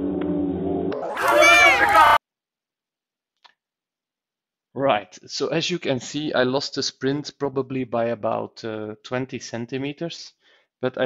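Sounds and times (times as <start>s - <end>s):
spectators shouting: 1.0s - 2.2s.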